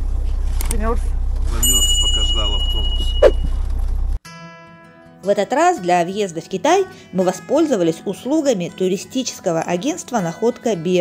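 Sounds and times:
bus engine rumble: 0.0 - 4.2
thin high tone: 1.6 - 3.6.

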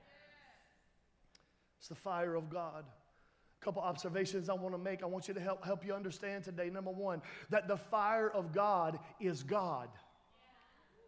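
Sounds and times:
man speaking: 1.8 - 3.0, 3.6 - 10.0.

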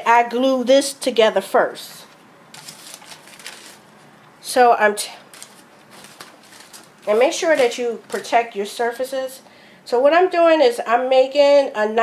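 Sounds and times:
rustling and crinkling: 2.0 - 4.1, 5.2 - 8.5.

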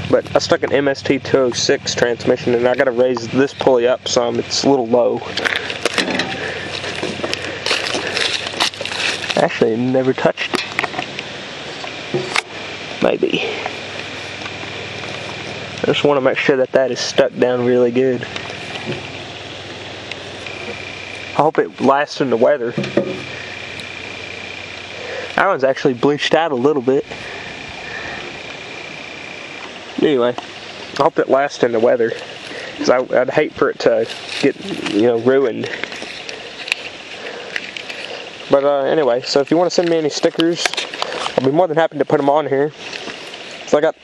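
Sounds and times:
even outdoor hiss: 0.0 - 44.0.

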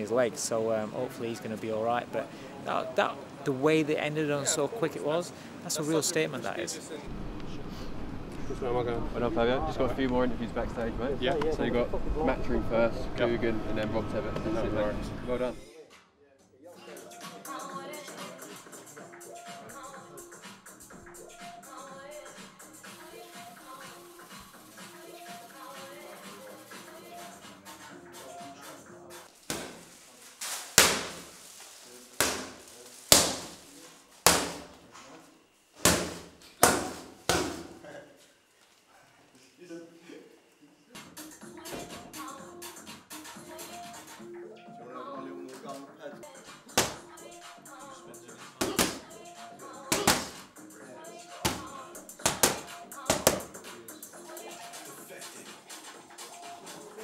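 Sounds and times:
voices: 8.3 - 15.6
music: 9.2 - 33.6, 40.6 - 57.0
boxing gloves smacking mitts: 29.4 - 29.9, 30.6 - 31.3, 32.2 - 33.6, 34.2 - 34.8, 35.8 - 37.8, 46.8 - 47.0, 48.6 - 49.0, 49.9 - 50.4, 51.4 - 53.5.

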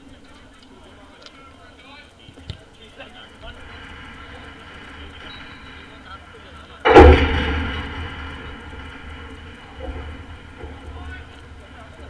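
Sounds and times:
steady low rumble: 2.8 - 12.0
loud ringing knock: 6.8 - 12.0.

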